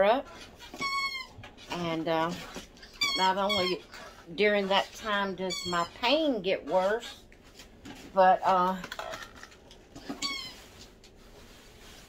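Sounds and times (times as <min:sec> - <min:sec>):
squeaky toy squeak: 0:00.6 - 0:01.4, 0:02.9 - 0:03.8, 0:05.5 - 0:06.0, 0:10.1 - 0:10.7.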